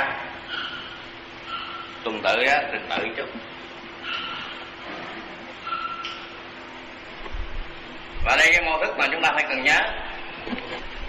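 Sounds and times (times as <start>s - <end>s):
electrical hum and hiss: 0.0s - 11.0s.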